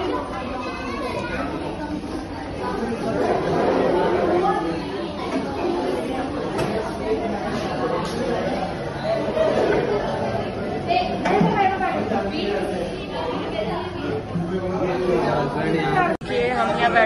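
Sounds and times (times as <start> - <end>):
crowd chatter echoing indoors: 0.0 - 17.0.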